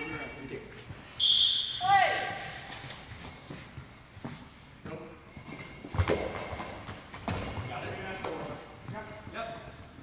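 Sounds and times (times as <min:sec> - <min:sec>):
ball bouncing on wooden floor: 0:05.9 - 0:07.6.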